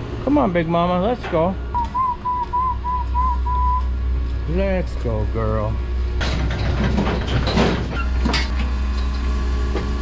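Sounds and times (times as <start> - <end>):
steady low hum: 0.0 - 10.0
person whistling: 1.8 - 3.9.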